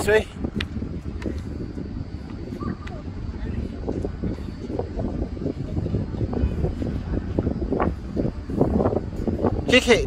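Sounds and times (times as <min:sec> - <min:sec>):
wind rumble on microphone: 0:00.0 - 0:10.0.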